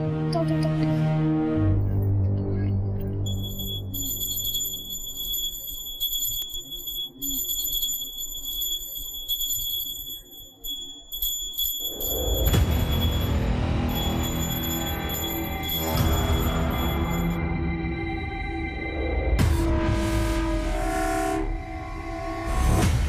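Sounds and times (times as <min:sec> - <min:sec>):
soft background music: 0:00.0 - 0:08.2
small hand bell ringing: 0:03.2 - 0:17.4.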